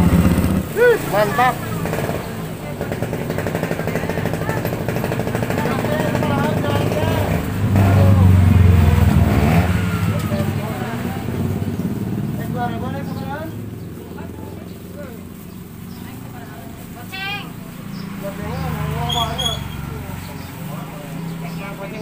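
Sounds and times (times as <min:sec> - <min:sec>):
small motorcycle engine running: 0:00.0 - 0:22.0
women chatting: 0:01.0 - 0:07.3, 0:12.7 - 0:17.9.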